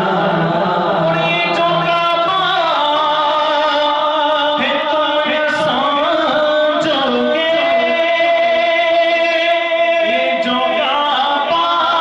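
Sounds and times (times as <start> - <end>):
man chanting into a microphone: 0.0 - 12.0.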